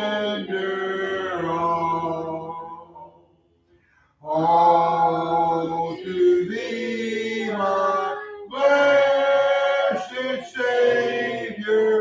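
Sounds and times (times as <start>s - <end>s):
congregation singing a hymn: 0.0s - 3.2s, 4.2s - 12.0s.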